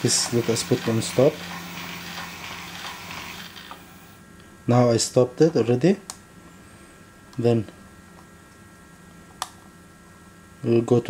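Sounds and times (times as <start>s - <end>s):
dosing pump running: 0.0s - 4.2s.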